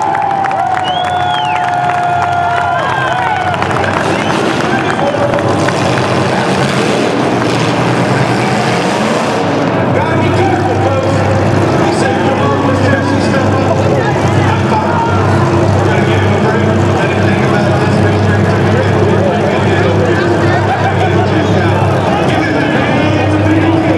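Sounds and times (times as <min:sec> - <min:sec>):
car engines running: 0:00.0 - 0:23.9
crowd noise: 0:00.0 - 0:23.9.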